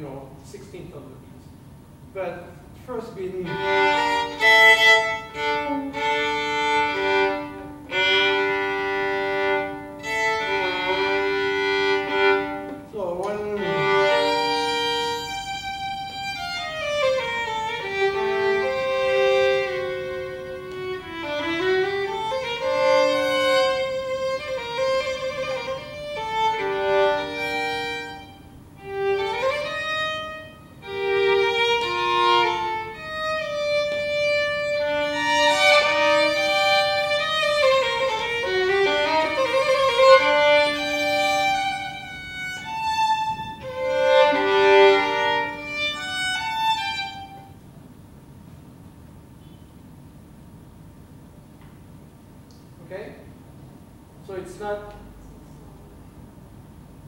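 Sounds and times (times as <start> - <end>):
solo violin playing slowly: 3.4 - 47.7.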